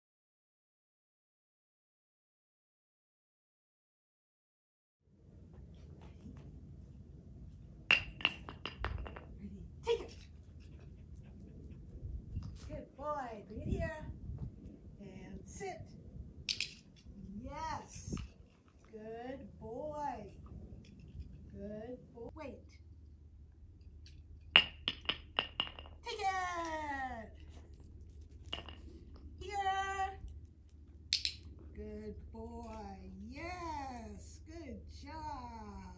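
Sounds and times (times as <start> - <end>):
dumbbell bouncing on bricks: 7.9 - 9.4, 24.5 - 26.1, 28.4 - 28.9.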